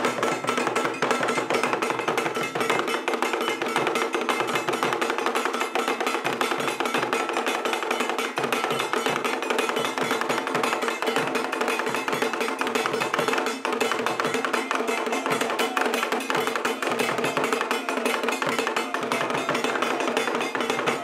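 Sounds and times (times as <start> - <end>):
drum ensemble playing fast rhythm: 0.0 - 21.0.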